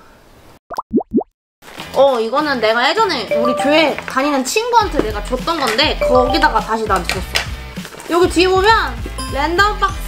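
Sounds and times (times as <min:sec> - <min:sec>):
cartoon plop sound effects: 0:00.7 - 0:01.3, 0:06.0 - 0:06.6.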